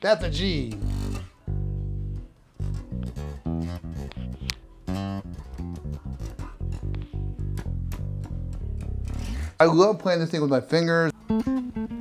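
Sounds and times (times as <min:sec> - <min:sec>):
electric bass plucked notes: 0:00.0 - 0:09.6, 0:11.2 - 0:12.0.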